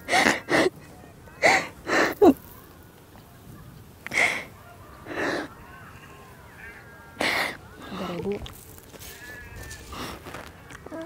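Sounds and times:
breathy sniffling: 0.0s - 0.8s, 1.4s - 2.4s, 4.0s - 5.5s, 7.2s - 8.2s
woman sobbing: 0.0s - 2.5s.

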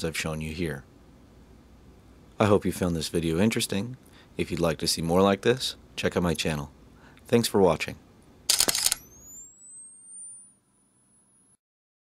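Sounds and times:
camera shutter click: 8.5s - 9.3s
flash recharging whine: 8.5s - 11.6s.

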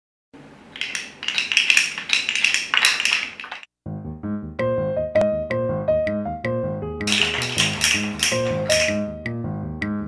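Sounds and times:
small hard objects clattering: 0.8s - 3.7s, 7.1s - 9.0s.

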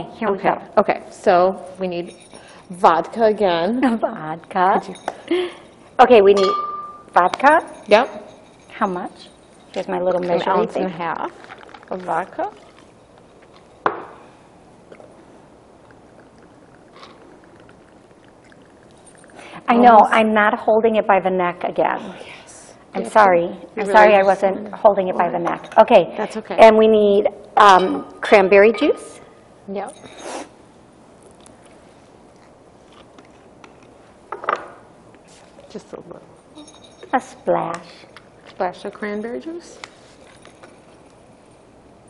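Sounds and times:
liquid trickling into glass: 12.5s - 13.0s, 15.8s - 19.7s.

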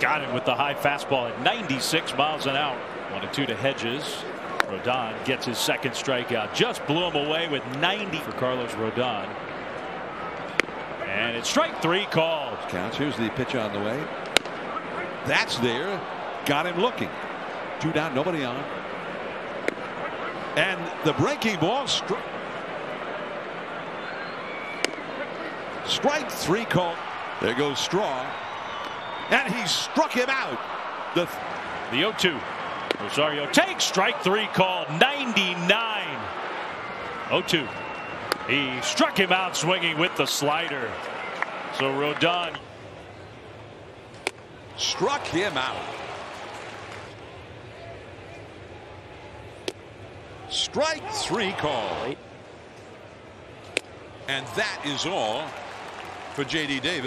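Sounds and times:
crowd murmur: 9.3s - 57.0s
ball smacking into mitt: 14.3s - 14.6s.

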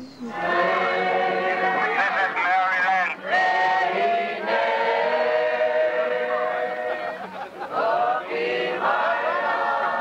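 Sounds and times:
group of voices singing: 0.2s - 10.0s.

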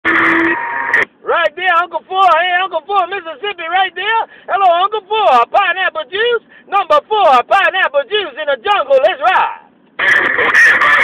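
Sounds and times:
radio static hiss: 0.0s - 1.2s, 9.9s - 11.0s
steady radio tone: 0.0s - 1.2s, 9.6s - 11.0s
man's voice over radio: 1.2s - 11.0s.

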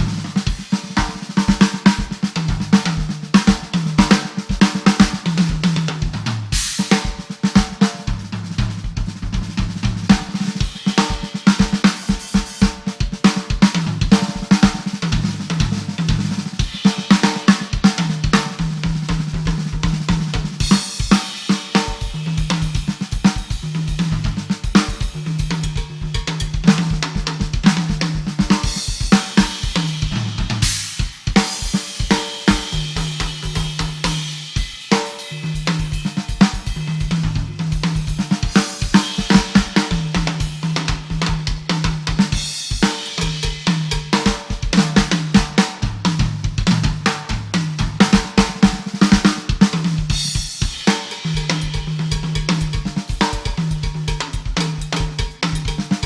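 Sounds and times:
drum kit played fast: 0.0s - 56.0s.

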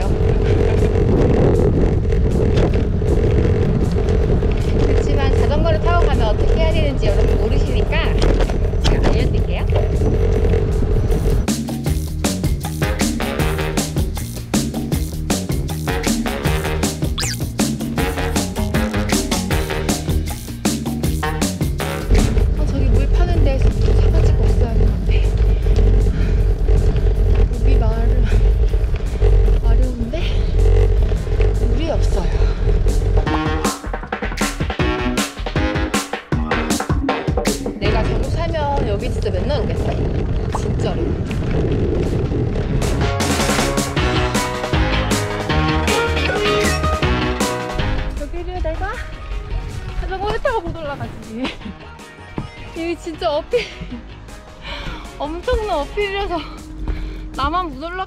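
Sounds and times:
wind buffeting microphone: 0.0s - 11.5s, 22.0s - 33.4s, 37.7s - 43.4s, 48.0s - 51.7s
woman talking: 4.9s - 8.2s, 8.9s - 9.7s, 22.6s - 25.4s, 27.5s - 28.3s, 29.6s - 30.5s, 37.8s - 40.0s, 40.6s - 41.1s, 48.1s - 49.1s, 50.0s - 51.6s, 52.8s - 53.8s, 55.2s - 56.6s, 57.4s - 58.0s
background music: 10.5s - 39.8s, 42.8s - 58.0s.

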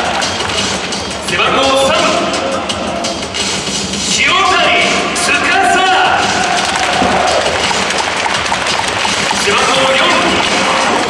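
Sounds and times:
public-address music: 0.0s - 11.0s
stadium crowd noise: 0.0s - 11.0s.

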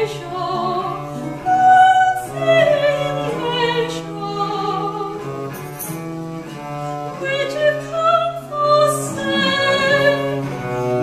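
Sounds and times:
soprano voice singing: 0.0s - 5.3s, 7.2s - 10.7s
baroque string and lute ensemble: 0.0s - 11.0s.

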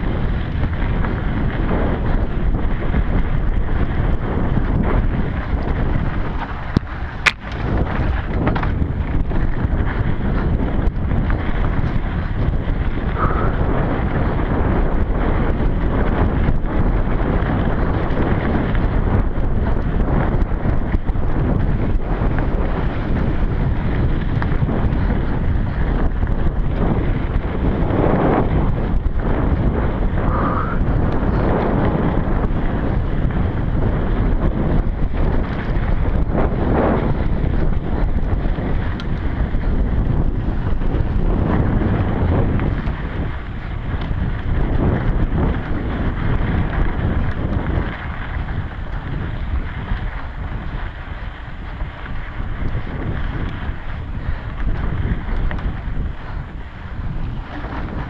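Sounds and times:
bike rattling: 0.0s - 58.0s
bike tyre rumble on dirt: 0.0s - 58.0s
wind buffeting microphone: 0.0s - 58.0s.

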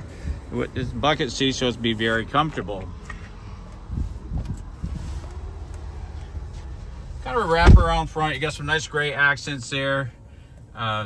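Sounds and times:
phone microphone handling rumble: 2.2s - 8.6s
soft thumps: 7.5s - 8.2s.

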